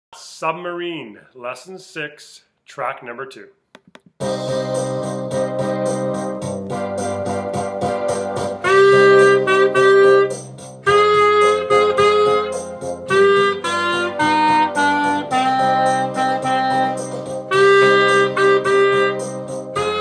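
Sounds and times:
recorded accompaniment with beat: 3.6 - 20.0
clarinet melody: 4.2 - 20.0.

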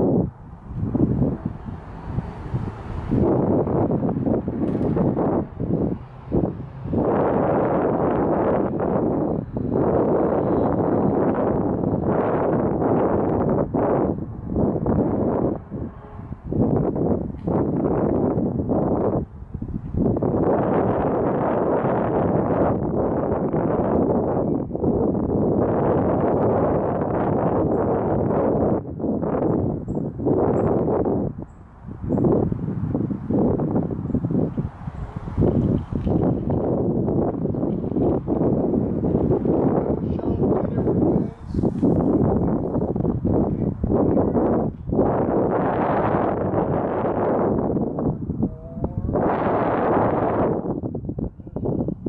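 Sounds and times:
wind buffeting microphone: 0.0 - 52.0.

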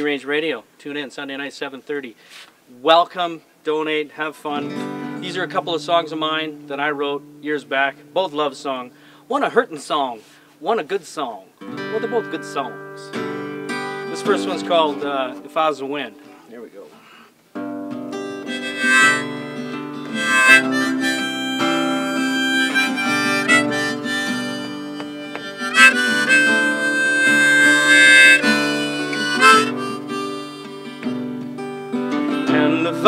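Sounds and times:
acoustic guitar: 4.5 - 10.7, 11.5 - 33.0
harmonica playing: 11.8 - 15.6, 17.9 - 33.0.

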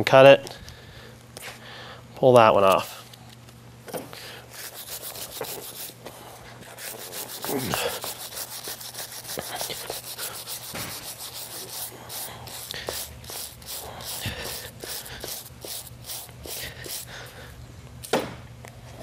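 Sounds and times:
brush scrubbing hoof: 4.5 - 17.3.

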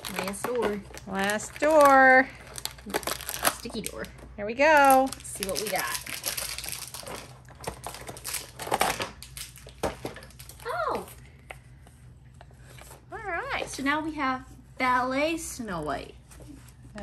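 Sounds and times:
plastic packaging crinkling: 0.0 - 10.8.

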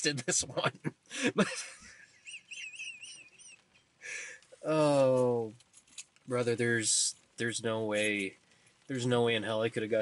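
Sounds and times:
man giggling stifled: 0.2 - 3.6.

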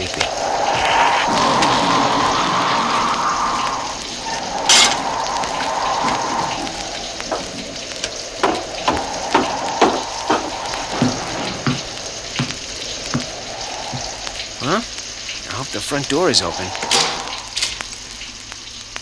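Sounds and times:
slow footsteps: 0.0 - 15.4
wind howling: 0.0 - 18.9.

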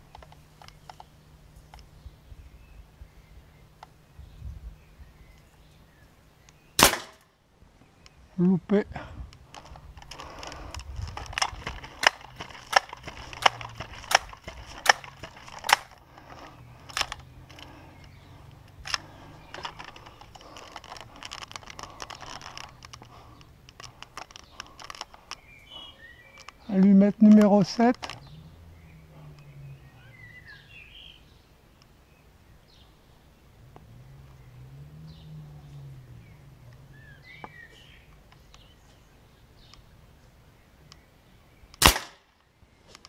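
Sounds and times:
air rifle shot: 6.8 - 7.2, 41.8 - 42.3
rifle handling clicks: 9.4 - 17.8.

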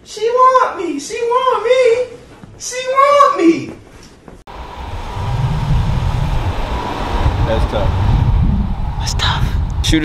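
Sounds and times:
low rumble: 4.5 - 10.0
steady outdoor hiss: 4.5 - 10.0.

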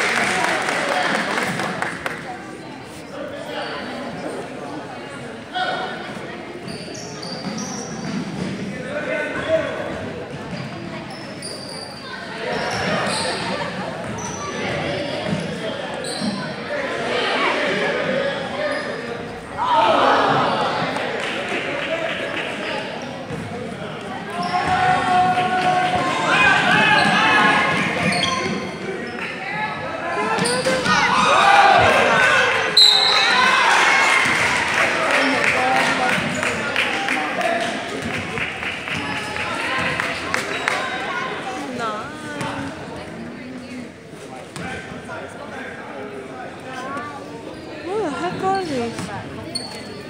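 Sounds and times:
spectators chatting: 0.0 - 50.0
sneaker squeaks: 6.6 - 8.6, 10.3 - 16.6, 18.6 - 19.5, 22.9 - 23.6, 24.3 - 25.0, 26.8 - 29.4, 30.3 - 31.2, 32.8 - 33.5, 46.9 - 50.0
basketball bouncing on court: 23.3 - 23.6.

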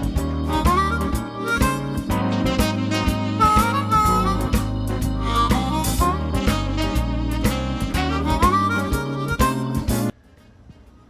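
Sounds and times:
bass line: 0.0 - 10.1
bluesy harmonica tune: 0.0 - 10.2
steady beat: 0.0 - 10.8.

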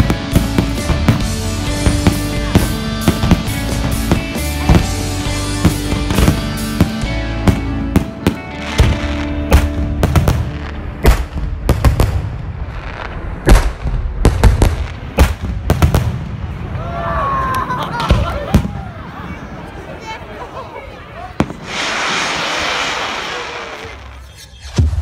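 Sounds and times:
fireworks bangs: 0.0 - 19.7, 21.3 - 25.0.

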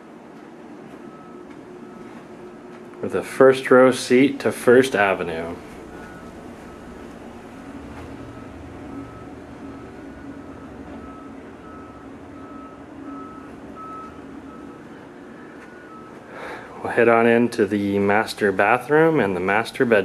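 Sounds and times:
low engine rumble: 0.0 - 20.0
reversing alarm beeping: 0.9 - 17.2.

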